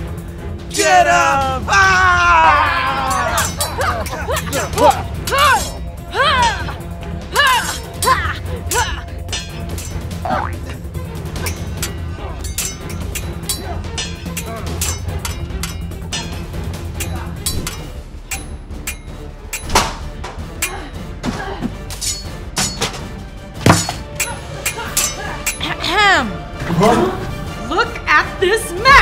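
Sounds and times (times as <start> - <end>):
background music: 0.0 - 29.0
sword clashes: 11.4 - 16.4, 21.9 - 23.0, 23.6 - 25.6.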